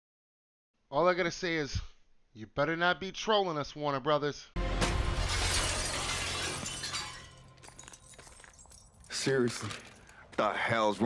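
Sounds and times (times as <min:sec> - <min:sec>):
glass window smashing: 0:04.8 - 0:10.1
glass shards tinkling: 0:05.3 - 0:10.2.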